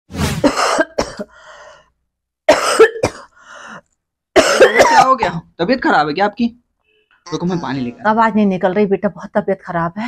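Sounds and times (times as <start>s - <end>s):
woman coughing: 0.4s - 1.4s, 2.5s - 3.3s, 4.4s - 5.3s
woman speaking: 7.4s - 10.0s.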